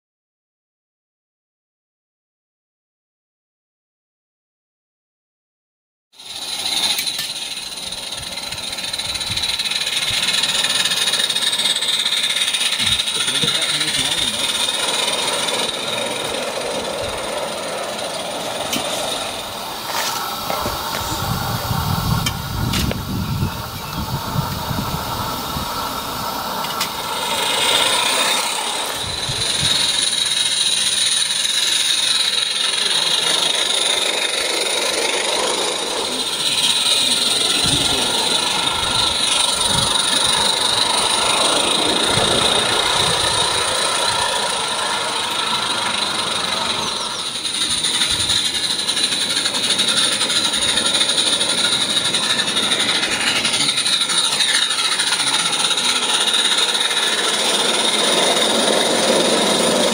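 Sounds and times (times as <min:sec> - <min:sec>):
steam locomotive hissing: 0:06.2 - 0:59.9
wheels rattling on rails: 0:06.2 - 0:59.9.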